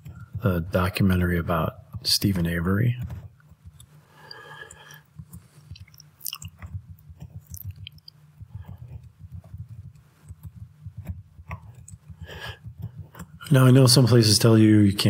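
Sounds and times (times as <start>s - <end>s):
low steady hum: 0.0s - 15.0s
keyboard typing: 1.9s - 14.3s.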